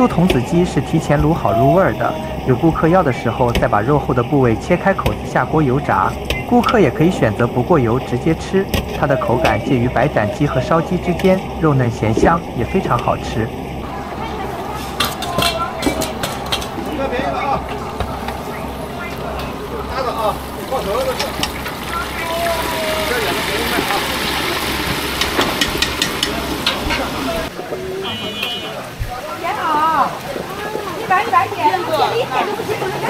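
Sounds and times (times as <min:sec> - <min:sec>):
steady low hum: 0:00.0 - 0:23.6
market voices chatter: 0:00.0 - 0:33.0
chicken sizzling in hot oil: 0:19.4 - 0:27.5.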